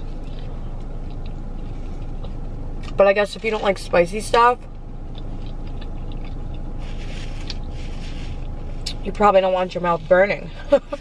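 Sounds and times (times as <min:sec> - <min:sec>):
person chewing food: 0:00.0 - 0:03.0, 0:04.7 - 0:09.0
low hum in car cabin: 0:00.0 - 0:11.0.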